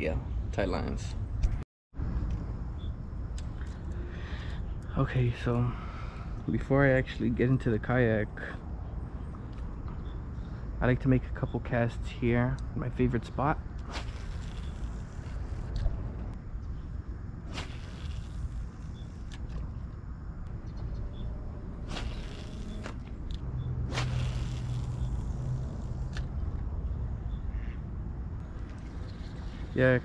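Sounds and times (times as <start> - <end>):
low hum: 0.0 - 30.0
fishing rod cast whooshes: 13.8 - 15.9, 17.5 - 18.8, 21.8 - 23.1, 23.8 - 25.4.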